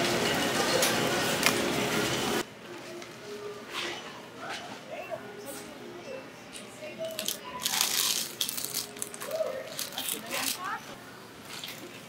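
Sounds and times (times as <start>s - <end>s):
sharp plastic crinkles: 7.1s - 10.8s
plastic-wrapped goods rustling: 7.2s - 10.8s.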